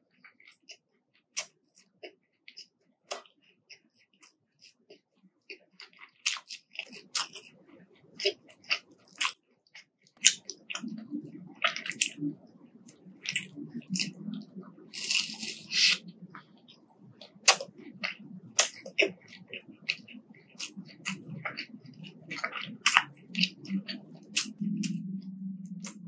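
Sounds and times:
wet chewing: 0:00.2 - 0:26.0
crunching bites: 0:14.9 - 0:16.0.

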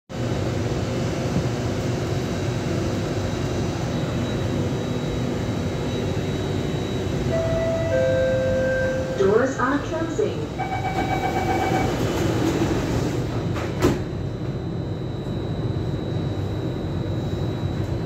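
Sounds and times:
metro car hum and hiss: 0:00.2 - 0:18.0
door-closing warning tone: 0:03.8 - 0:09.6, 0:10.5 - 0:18.0.

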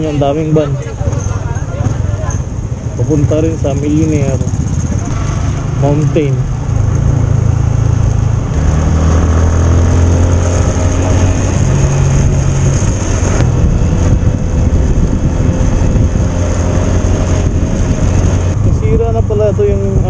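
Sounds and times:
motorcycle engine running: 0:00.0 - 0:20.0.

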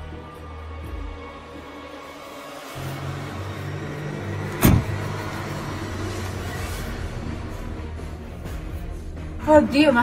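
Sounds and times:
car door slamming: 0:04.5 - 0:05.1.

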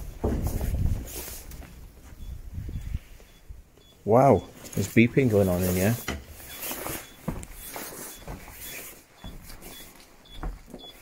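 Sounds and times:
short high electronic beeps: 0:02.7 - 0:08.9.

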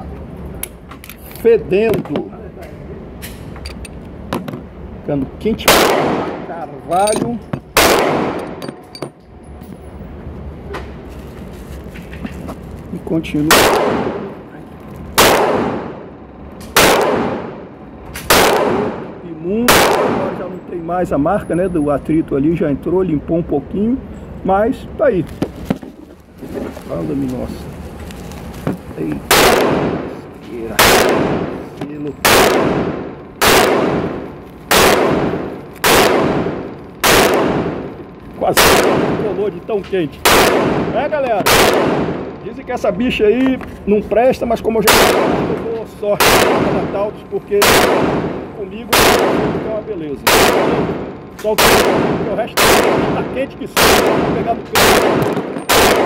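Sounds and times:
pistol shot echoing indoors: 0:05.7 - 0:06.4, 0:07.8 - 0:08.6, 0:13.5 - 0:14.3, 0:15.2 - 0:16.0, 0:16.8 - 0:17.6, 0:18.2 - 0:19.0, 0:19.7 - 0:20.4, 0:29.3 - 0:30.0, 0:30.8 - 0:31.5, 0:32.2 - 0:37.9, 0:38.6 - 0:39.2, 0:40.3 - 0:42.2, 0:44.9 - 0:45.5, 0:46.2 - 0:46.9, 0:47.6 - 0:49.6, 0:50.3 - 0:51.0, 0:51.6 - 0:53.2, 0:53.8 - 0:56.0
faint gunshot: 0:05.7 - 0:06.5, 0:07.8 - 0:08.4, 0:13.5 - 0:14.3, 0:18.2 - 0:19.0, 0:29.3 - 0:30.1, 0:30.7 - 0:31.6, 0:32.2 - 0:37.8, 0:47.6 - 0:49.7, 0:51.6 - 0:56.0.

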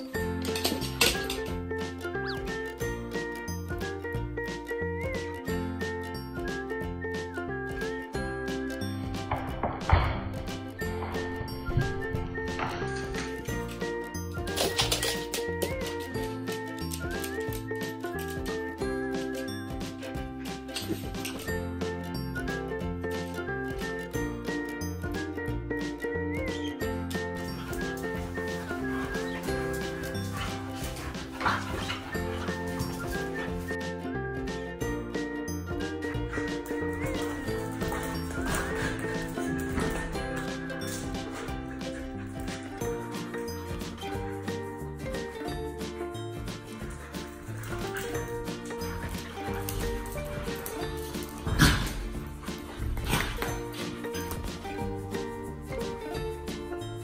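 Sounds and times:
upbeat background music: 0:00.0 - 0:57.0
dogs growling while play-fighting: 0:27.7 - 0:33.7, 0:36.4 - 0:43.0, 0:47.0 - 0:54.1.

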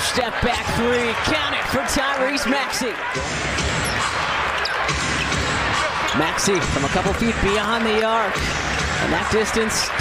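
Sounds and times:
crowd noise in a hall: 0:00.0 - 0:10.0.

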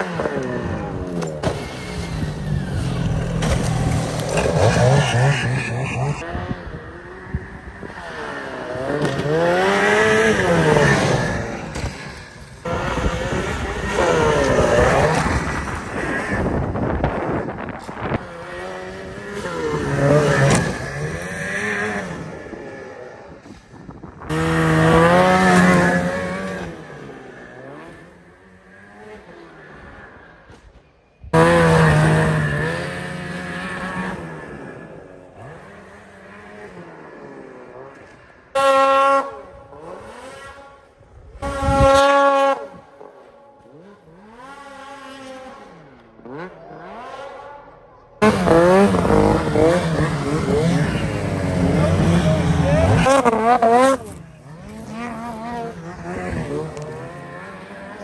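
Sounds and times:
snowmobile engines revving: 0:00.0 - 0:30.6, 0:31.2 - 0:58.0.

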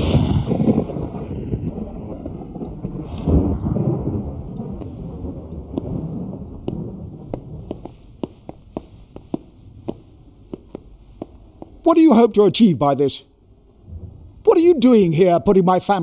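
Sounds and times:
deep rolling rumble: 0:00.0 - 0:11.9, 0:13.6 - 0:14.5
footsteps on wooden floor: 0:05.7 - 0:12.0.

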